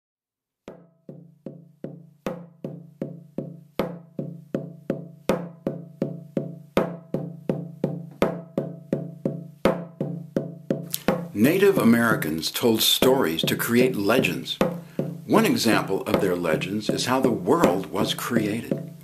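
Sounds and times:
drum beaten in steady pulse: 0.7s - 19.0s.

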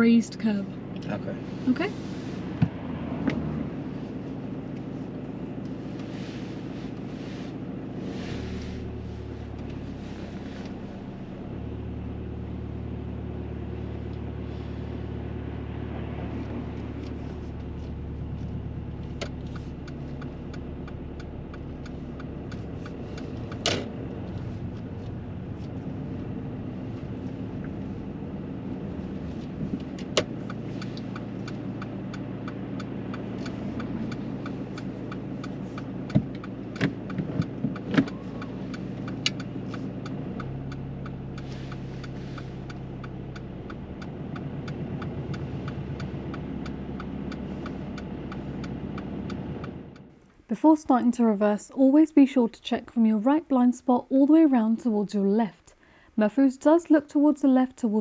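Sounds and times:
car engine idling: 0.0s - 50.8s
faint regular ticking: 19.2s - 23.6s, 30.0s - 50.5s
gear lever clicks and clunks: 35.8s - 39.5s.

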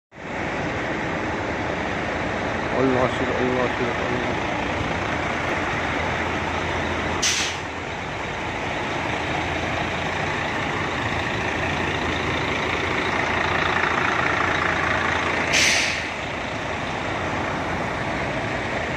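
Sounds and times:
diesel trucks idling: 0.2s - 18.9s
truck air brakes hissing: 7.0s - 7.8s, 15.2s - 16.4s.

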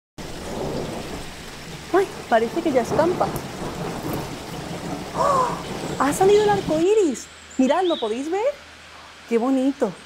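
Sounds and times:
low rumble of thunder: 0.2s - 8.8s
rain falling: 0.2s - 10.0s.

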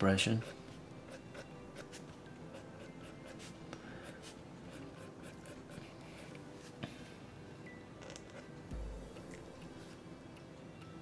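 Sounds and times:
marker pen scratching on paper: 0.4s - 6.4s.

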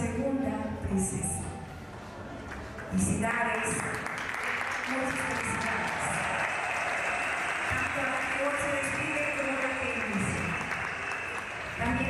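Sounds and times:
audience applauding: 3.6s - 12.0s.

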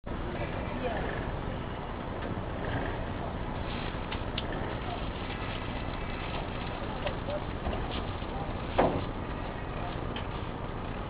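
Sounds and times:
faint distant voices: 0.1s - 11.0s
outdoor background noise: 0.1s - 11.0s.

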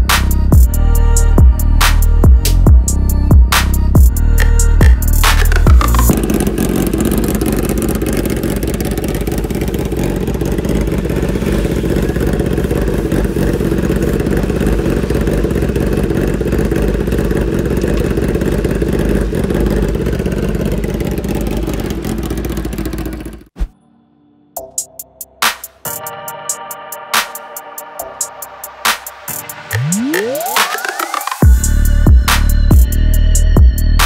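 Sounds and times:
motorcycle engine running steadily: 0.0s - 23.6s, 31.4s - 34.0s.

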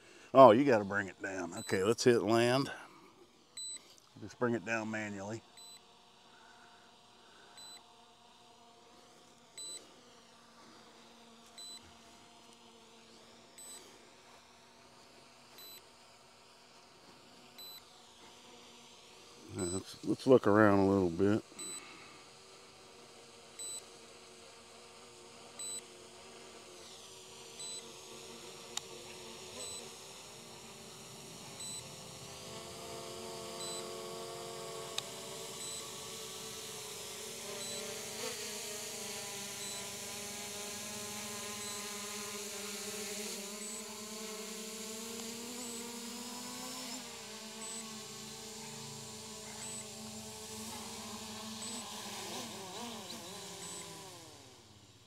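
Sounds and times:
drone propellers buzzing: 0.0s - 2.9s, 8.4s - 54.7s.

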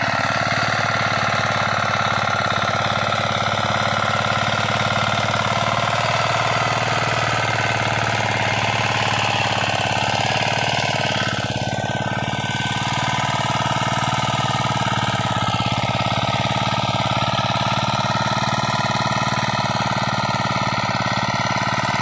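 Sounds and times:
tiller engine under load: 0.0s - 22.0s.

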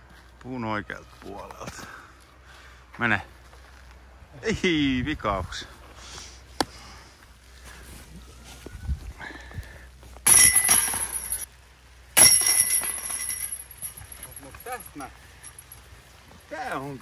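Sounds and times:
discs crashing into metal chains: 10.3s - 11.5s, 12.2s - 15.6s.

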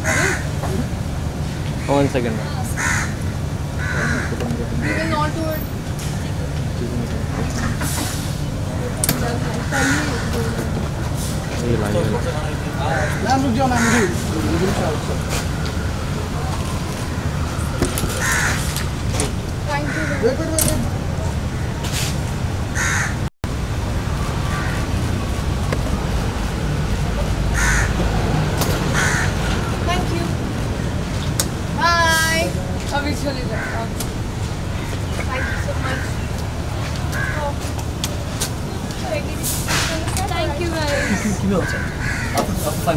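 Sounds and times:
crow cawing: 0.0s - 0.6s, 2.7s - 5.3s, 9.6s - 10.6s, 12.8s - 14.9s, 17.1s - 18.7s, 19.7s - 20.4s, 22.8s - 23.2s, 24.4s - 24.9s, 27.5s - 28.0s, 28.9s - 29.6s, 33.5s - 33.9s, 34.8s - 36.3s, 37.1s - 37.6s, 40.8s - 42.6s
low outdoor rumble: 0.0s - 42.9s.

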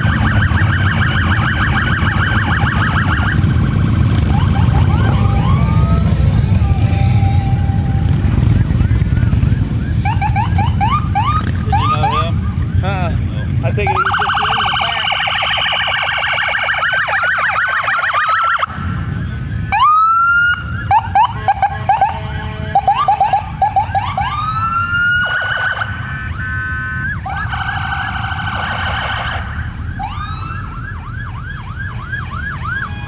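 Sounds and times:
car engines and tyres rumbling: 0.0s - 33.0s
police sirens: 0.0s - 33.0s.

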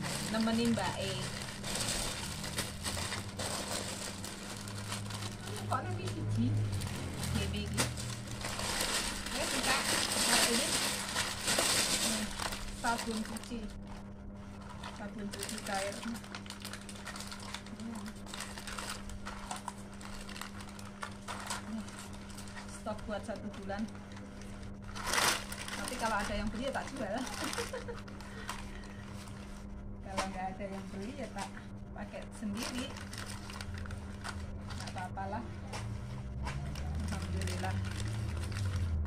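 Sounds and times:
plastic packaging rustling: 0.0s - 31.5s, 32.4s - 39.0s
plastic strips crinkling: 0.0s - 31.5s, 32.1s - 39.0s
steady low hum: 0.0s - 39.0s.

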